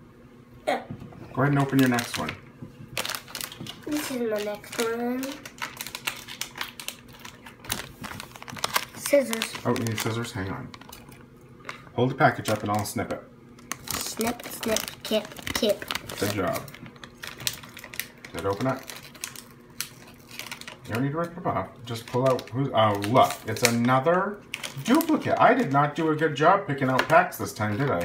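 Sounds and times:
foil packet crinkling: 0:01.4 - 0:28.0.

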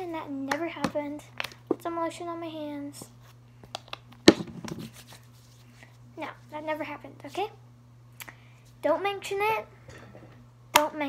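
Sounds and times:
hands spreading lotion: 0:04.3 - 0:05.8.

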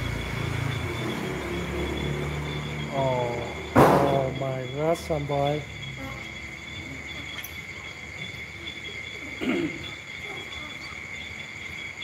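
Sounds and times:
night insects chorus: 0:00.0 - 0:12.0.

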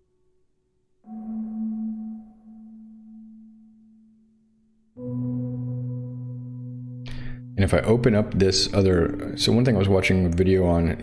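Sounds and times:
soft bell-like note: 0:05.0 - 0:10.0.

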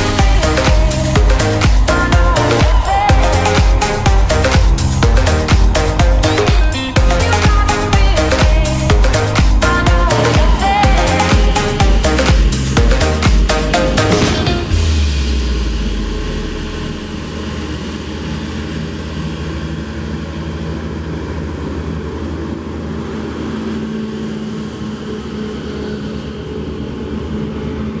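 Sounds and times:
electronic dance music: 0:00.0 - 0:17.2
tractor diesel engine running: 0:00.0 - 0:28.0.

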